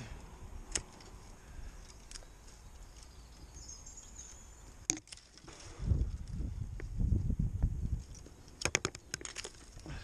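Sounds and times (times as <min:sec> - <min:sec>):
branches rustling: 0:00.0 - 0:10.0
secateurs snipping twig: 0:00.2 - 0:03.2.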